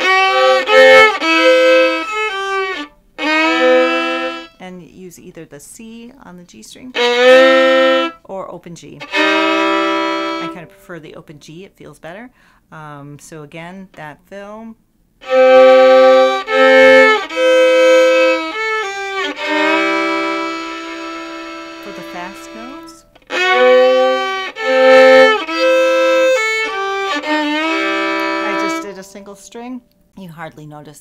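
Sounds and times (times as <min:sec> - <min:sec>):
solo fiddle playing: 0:00.0 - 0:04.6, 0:06.9 - 0:08.2, 0:08.9 - 0:10.8, 0:15.2 - 0:29.4.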